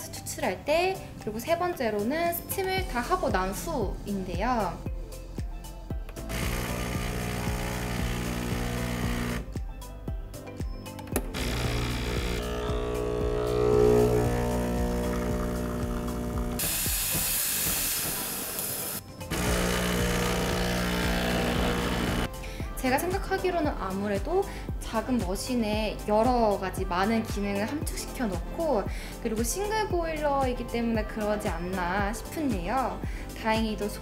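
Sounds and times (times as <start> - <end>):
espresso machine pump buzzing: 6.2 - 9.5, 11.2 - 22.3
espresso machine humming: 6.3 - 9.5, 11.3 - 18.7, 19.3 - 22.3
steam hissing: 16.6 - 19.0.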